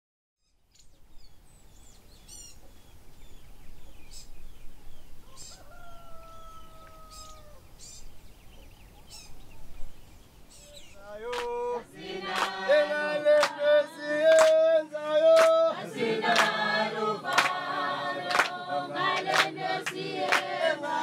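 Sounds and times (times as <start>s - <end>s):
birds chirping and trilling: 0.4s - 12.3s
rooster crowing: 5.2s - 7.7s.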